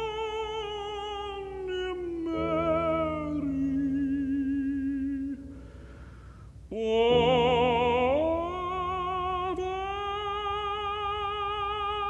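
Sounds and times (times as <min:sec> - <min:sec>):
man singing held note: 0:00.0 - 0:05.8
quiet piano accompaniment: 0:00.0 - 0:12.0.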